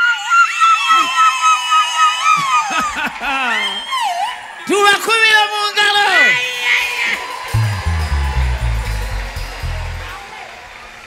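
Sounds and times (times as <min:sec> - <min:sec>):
band music: 0:07.4 - 0:10.6
low bass notes: 0:07.6 - 0:10.3.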